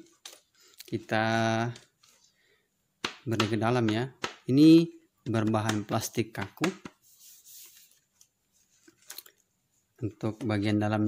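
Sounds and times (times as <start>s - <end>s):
hand rubbing plastic helmet: 6.8s - 9.1s.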